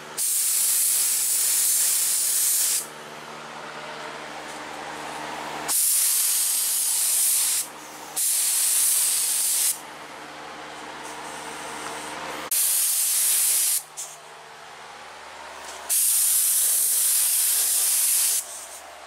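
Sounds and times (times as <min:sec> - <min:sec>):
steady hum: 0:00.0 - 0:19.0
spray gun rush of air: 0:00.2 - 0:02.9, 0:05.7 - 0:09.8, 0:12.5 - 0:14.2, 0:15.9 - 0:18.8.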